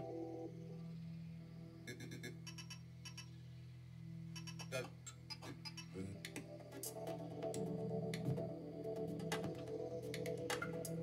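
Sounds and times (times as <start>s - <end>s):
low electronic drone: 0.0s - 11.0s.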